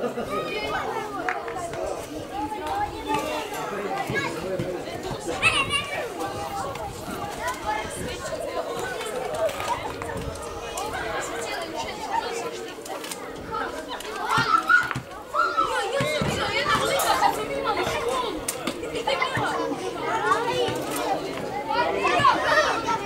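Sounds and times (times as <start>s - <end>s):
boys shouting: 13.6s - 20.8s, 21.6s - 23.0s.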